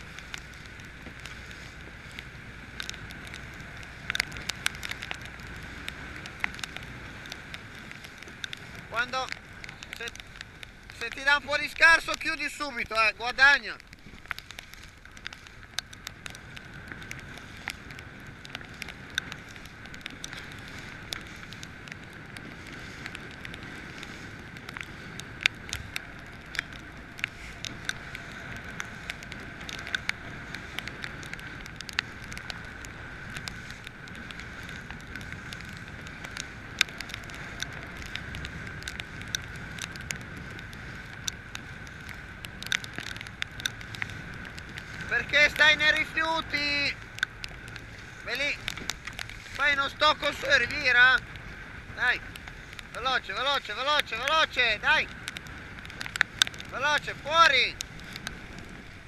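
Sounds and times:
wind and choppy water rushing: 0.0s - 59.0s.

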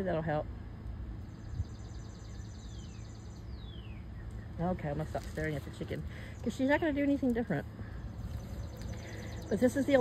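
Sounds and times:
low rumble of wind: 0.0s - 10.0s
songbird singing: 0.0s - 10.0s.

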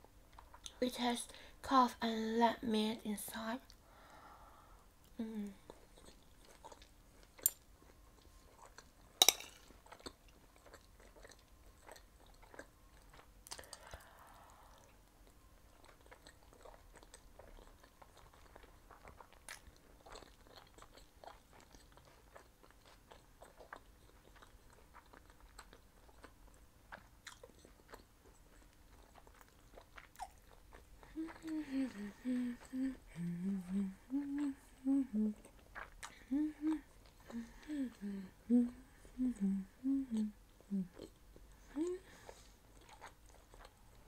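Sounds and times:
close-miked chewing: 4.8s - 44.0s
woman humming: 5.1s - 5.7s, 31.1s - 35.5s, 36.2s - 42.2s.

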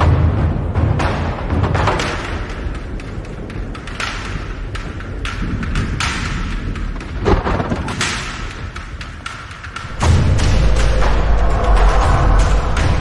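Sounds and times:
tense film soundtrack: 0.0s - 13.0s
rushing swells: 8.0s - 13.0s
deep drum hits: 9.9s - 13.0s.

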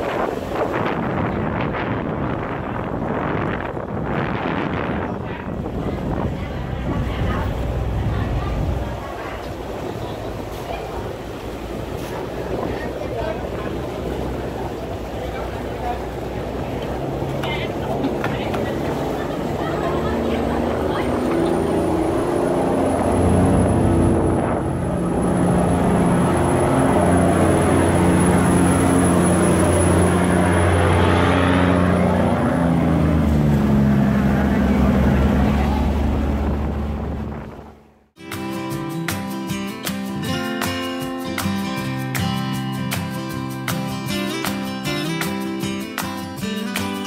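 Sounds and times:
boat diesel engine droning: 0.0s - 38.1s
propeller wash churning: 5.4s - 37.6s.

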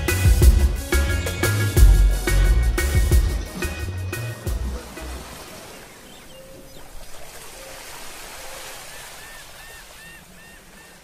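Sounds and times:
surf noise: 3.6s - 11.0s.

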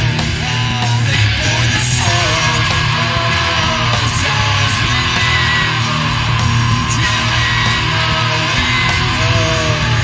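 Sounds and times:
guitar rock music: 0.0s - 10.0s.

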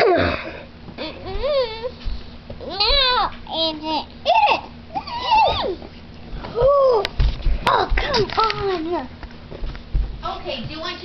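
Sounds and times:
child whining: 1.0s - 5.8s, 6.5s - 7.1s.

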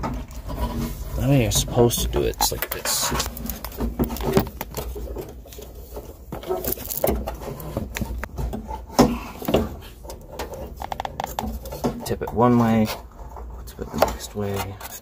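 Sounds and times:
fuel pump parts clicking and knocking: 0.0s - 15.0s.

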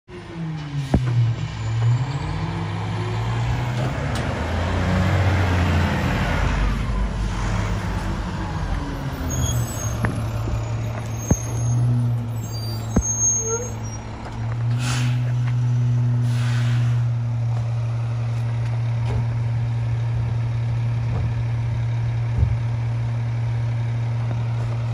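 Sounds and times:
garbage truck diesel engine: 0.1s - 24.9s.

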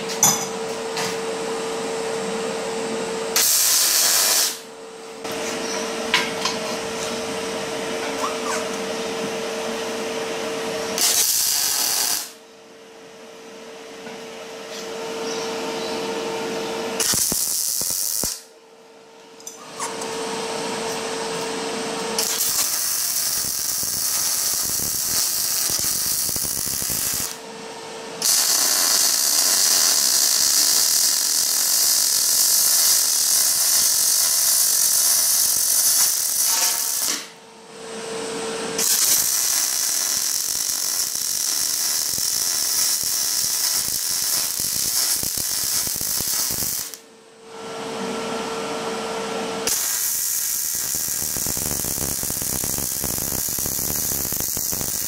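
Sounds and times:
welding arc crackling: 3.4s - 4.6s, 11.0s - 12.4s, 17.0s - 18.5s, 22.2s - 27.4s, 28.2s - 37.3s, 38.8s - 47.0s, 49.7s - 55.0s.

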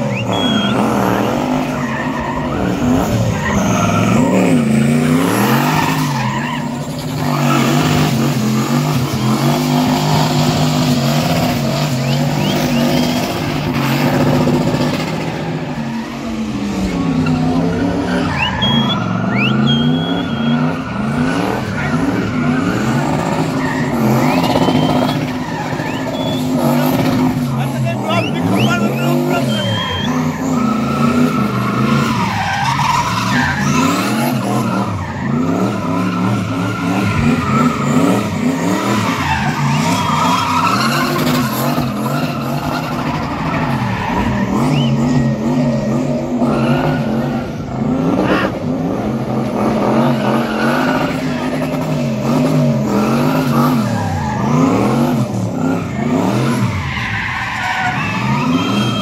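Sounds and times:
car engine revving hard: 0.0s - 59.0s
tyres screeching and skidding: 0.0s - 59.0s.

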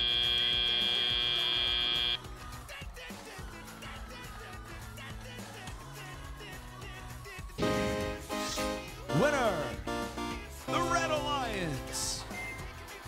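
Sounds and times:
buzzer tone: 0.0s - 2.2s.

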